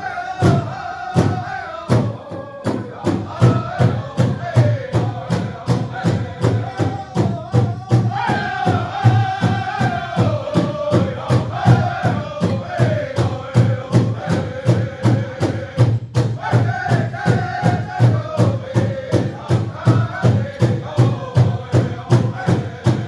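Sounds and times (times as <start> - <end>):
group of singers singing: 0.0 - 23.0
steady drum beat: 0.0 - 23.0.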